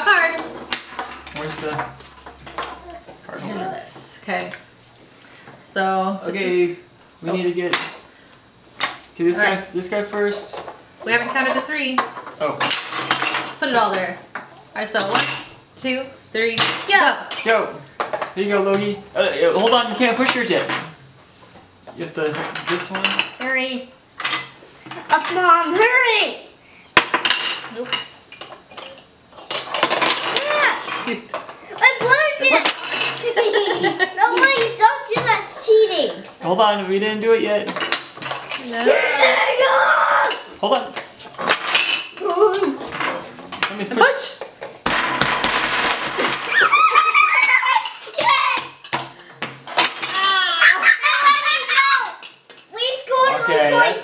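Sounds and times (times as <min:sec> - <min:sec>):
toy blocks clattering over: 0:28.8 - 0:31.5, 0:32.5 - 0:33.6, 0:41.4 - 0:43.8, 0:44.8 - 0:50.4
children shouting and giggling: 0:38.6 - 0:40.5, 0:46.5 - 0:48.8, 0:50.1 - 0:52.2
toy blocks clicking and clattering: 0:44.9 - 0:49.1, 0:49.7 - 0:50.4.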